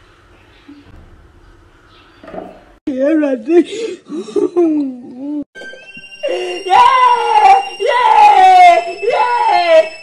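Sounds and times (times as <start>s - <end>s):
person wailing high cries: 6.2s - 10.0s.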